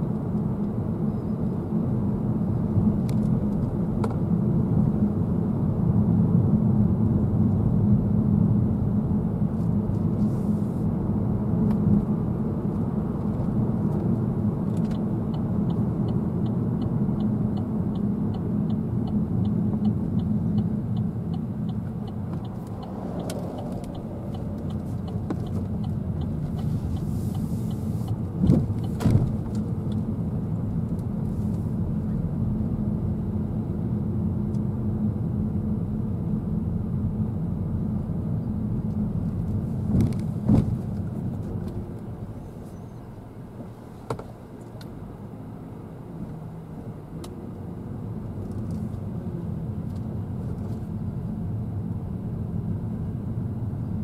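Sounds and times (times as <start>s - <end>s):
car road and engine rumble: 0.0s - 54.0s
turn indicator ticking: 14.7s - 30.1s.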